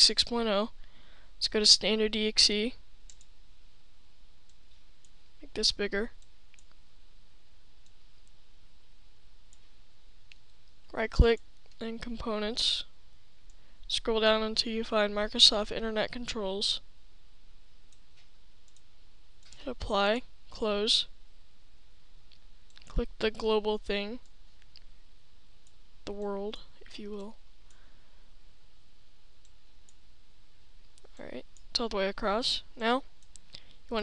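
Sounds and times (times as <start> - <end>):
steady background hiss: 0.0 - 34.0
faint clicks: 3.1 - 3.3, 6.2 - 6.8, 17.9 - 19.6, 33.2 - 33.8
faint computer mouse clicks: 3.1 - 3.3, 6.2 - 6.8, 33.2 - 33.7.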